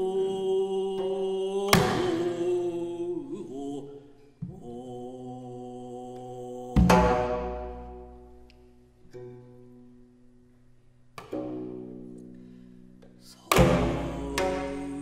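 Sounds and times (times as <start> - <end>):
plucked strings ringing: 6.8 - 15.0
bowed string long note: 11.2 - 15.0.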